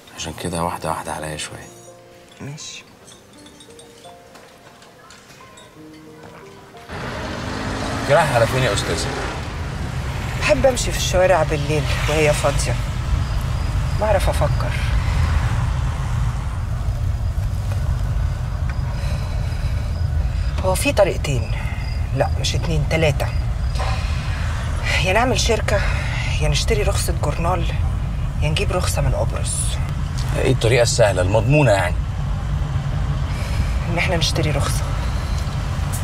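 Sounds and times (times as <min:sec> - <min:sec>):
road noise: 0:02.9 - 0:36.0
car engine low rumble: 0:06.9 - 0:36.0.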